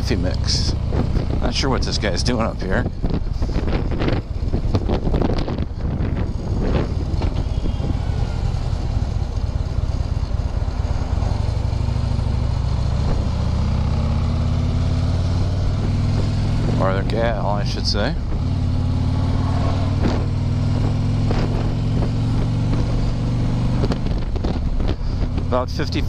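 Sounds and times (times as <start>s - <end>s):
motorcycle engine running: 0.0s - 26.0s.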